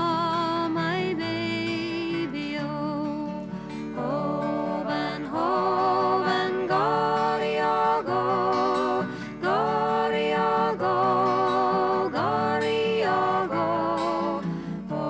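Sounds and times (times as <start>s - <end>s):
woman singing lullaby: 0.0s - 10.2s.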